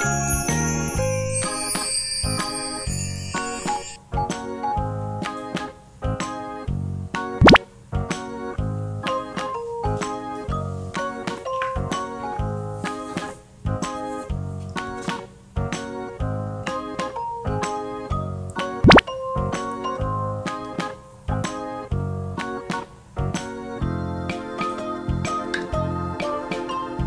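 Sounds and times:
cheerful children's music: 0.0 - 27.0
cartoon plop with upward sweep: 7.4 - 7.6, 18.8 - 19.0.

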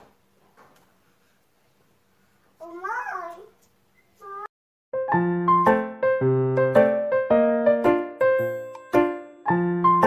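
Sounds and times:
small child's high-pitched call: 4.2 - 4.5.

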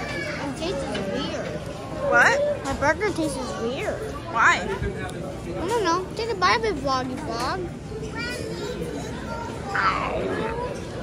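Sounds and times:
indistinct voices: 9.7 - 11.0.

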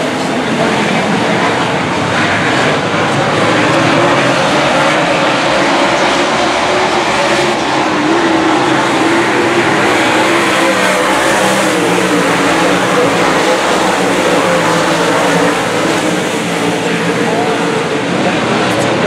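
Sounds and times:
race car engines roaring: 0.0 - 19.0.

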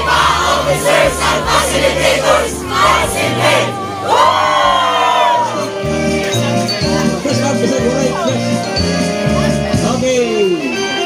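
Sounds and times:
group shouting and cheering: 0.0 - 5.9.

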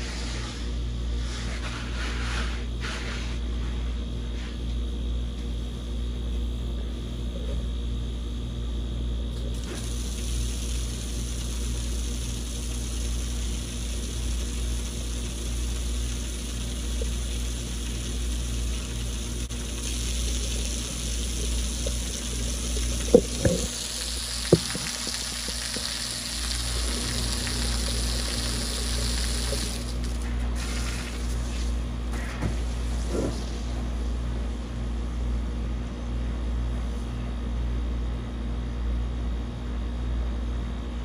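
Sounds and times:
low hum: 9.3 - 30.6
garden hose spraying water: 9.4 - 33.7.

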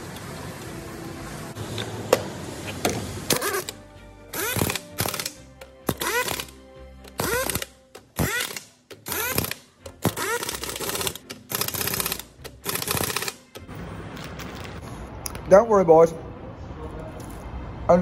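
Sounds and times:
impact wrench rattling: 4.4 - 6.5, 7.1 - 13.7.

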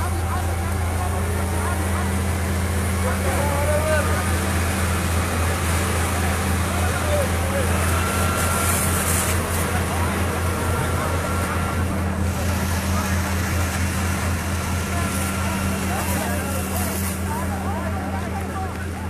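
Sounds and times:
faint voices: 0.0 - 19.0
vehicle engine humming: 0.0 - 19.0.

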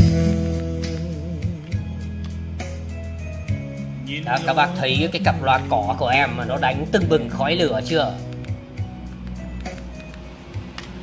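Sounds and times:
music through speakers: 0.0 - 11.0.

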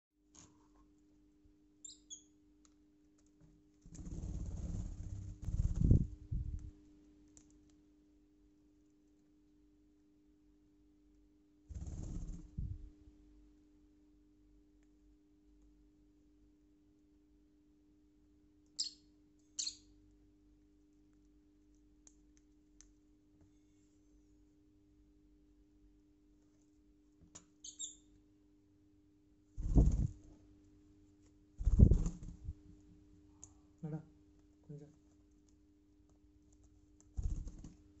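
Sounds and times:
faint low hum: 0.2 - 38.0
bird squeak: 1.8 - 2.3, 19.6 - 19.9, 27.6 - 28.1
lovebird chirps: 1.8 - 2.4, 18.8 - 19.9, 27.6 - 28.1.

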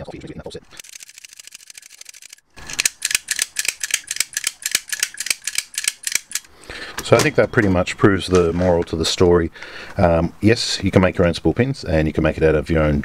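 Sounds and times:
lock pick rattling metallic ticks: 1.0 - 6.5
lock pick sharp clicks: 2.7 - 6.5.

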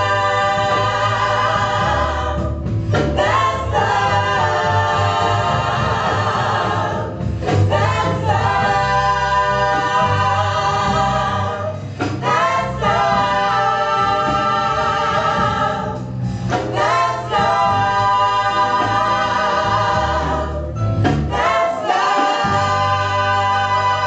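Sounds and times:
women singing into microphones: 0.0 - 24.0.

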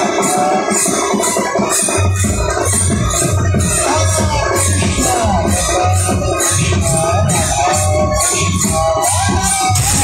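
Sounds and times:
hand cymbals clashing: 0.0 - 10.0
low drum: 0.0 - 10.0.

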